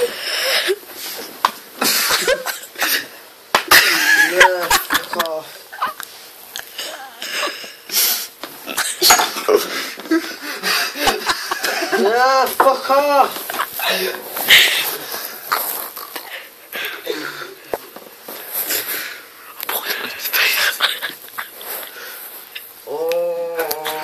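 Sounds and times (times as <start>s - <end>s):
people laughing breathlessly: 1.8s - 6.0s, 8.9s - 12.2s, 20.3s - 22.2s
high squealing laughter: 3.7s - 6.0s.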